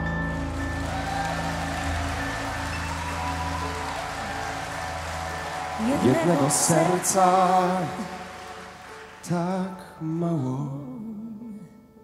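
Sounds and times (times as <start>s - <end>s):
piano and guitar chords: 0.0s - 12.0s
shimmering wash: 0.3s - 10.2s
person singing: 5.8s - 12.0s.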